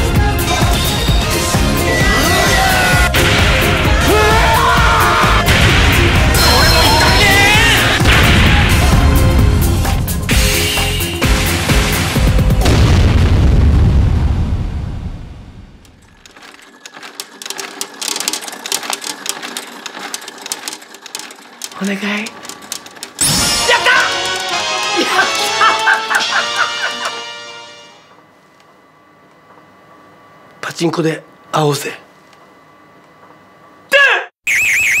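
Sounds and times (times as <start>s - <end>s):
pachinko balls clattering: 16.0s - 26.0s
warbling electronic tone: 34.5s - 35.0s.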